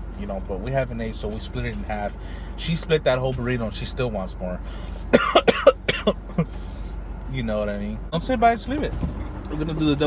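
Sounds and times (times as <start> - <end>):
person coughing: 5.1 - 6.5.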